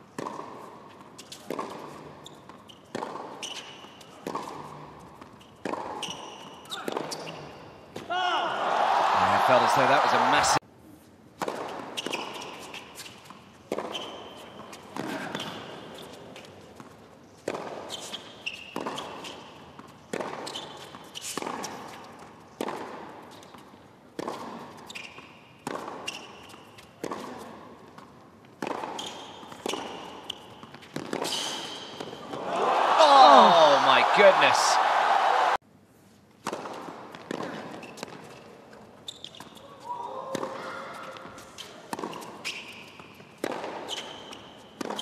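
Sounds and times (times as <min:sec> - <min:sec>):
tennis ball hit by rackets: 0:00.2 - 0:00.7, 0:30.6 - 0:32.2
crowd cheering and applause: 0:08.6 - 0:10.6, 0:32.4 - 0:35.6.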